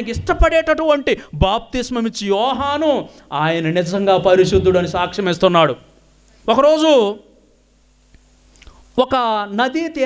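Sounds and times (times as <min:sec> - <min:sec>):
man's amplified speaking voice: 0:00.0 - 0:07.4, 0:09.0 - 0:10.0
faint steady hum: 0:00.0 - 0:10.0.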